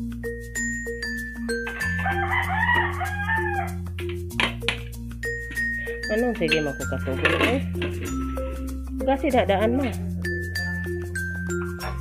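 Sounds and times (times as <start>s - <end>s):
rooster crowing: 1.8s - 3.8s.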